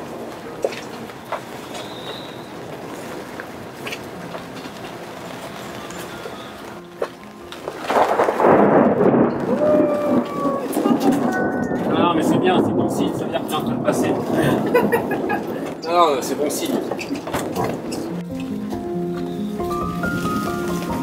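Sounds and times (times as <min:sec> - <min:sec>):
storm noise: 0:07.4 - 0:18.2
roll of thunder: 0:07.8 - 0:16.9.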